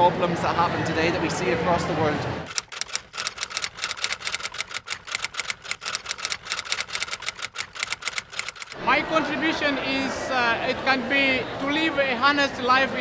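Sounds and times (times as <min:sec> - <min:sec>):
fast light sharp clicks: 0:02.5 - 0:08.8.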